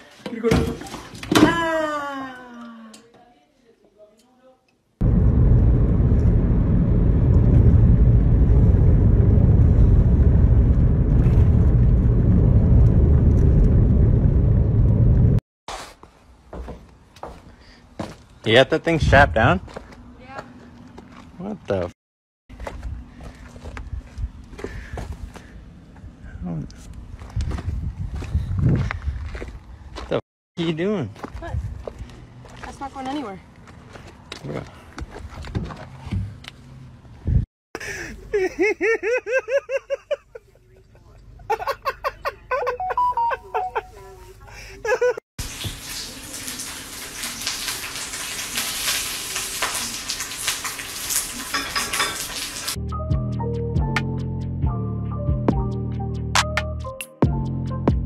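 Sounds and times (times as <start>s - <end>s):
wind rumbling on microphone: 5.0s - 15.4s, 22.5s - 30.0s, 31.3s - 32.2s, 37.1s - 37.4s
footsteps on gravel: 15.7s - 18.4s, 19.6s - 21.4s, 22.5s - 25.5s, 27.1s - 30.2s, 31.1s - 35.9s
hiss with crackles and pops: 45.4s - 52.8s.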